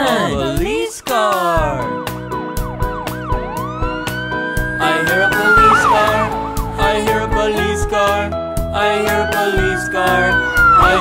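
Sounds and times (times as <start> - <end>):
music with steady beat: 0.0 - 11.0
police siren wailing: 2.1 - 7.4, 9.0 - 11.0.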